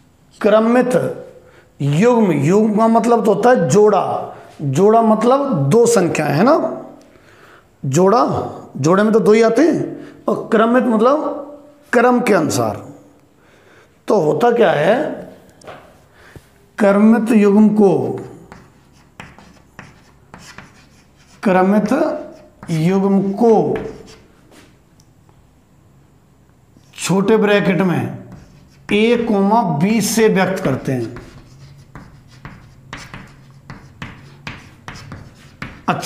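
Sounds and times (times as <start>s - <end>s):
chalk tapping on chalkboard: 18.0s - 24.6s, 28.2s - 36.0s
chalk scratching on chalkboard: 18.0s - 24.7s, 28.2s - 36.0s.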